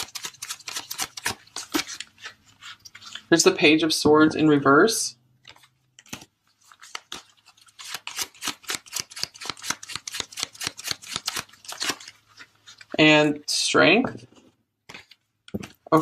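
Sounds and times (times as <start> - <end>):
cards being shuffled: 0.0 - 3.6, 5.4 - 13.0.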